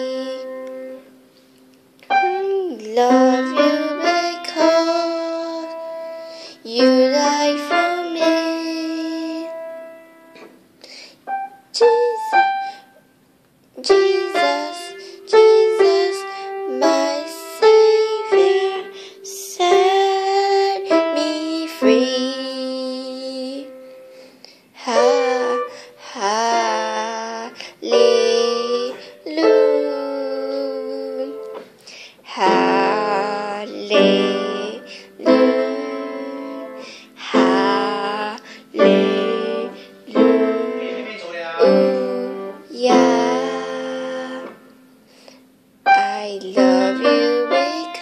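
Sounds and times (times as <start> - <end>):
person singing: 0.0 - 1.1, 2.1 - 10.5, 11.3 - 12.9, 13.8 - 24.1, 24.8 - 31.6, 32.2 - 44.7, 45.9 - 48.0
piano melody: 0.0 - 13.0, 13.8 - 31.7, 32.3 - 45.1, 45.7 - 48.0.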